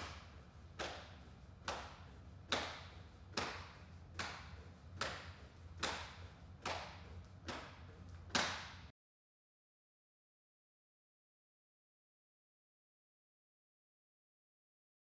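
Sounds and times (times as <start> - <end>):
steady low hum: 0.0 - 8.9.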